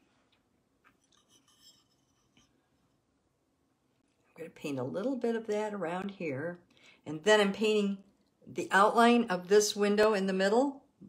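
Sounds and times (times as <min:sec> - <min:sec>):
paintbrush scratching on porcelain: 0:01.0 - 0:02.7.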